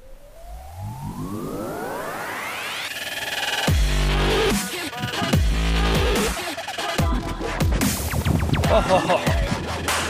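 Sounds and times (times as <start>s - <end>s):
rich rising sweep: 0.0s - 4.6s
rising synthesizer sweep: 0.0s - 4.6s.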